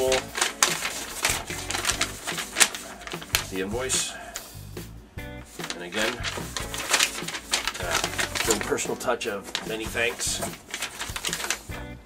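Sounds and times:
paper and cardboard rustling: 0.0s - 4.2s, 5.4s - 11.8s.

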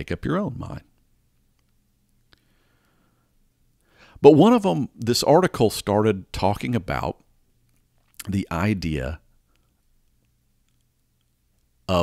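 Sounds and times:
man speaking: 0.0s - 0.9s, 4.2s - 7.2s, 8.2s - 9.2s
faint low hum: 0.0s - 12.0s
faint clicks: 9.5s - 11.7s.

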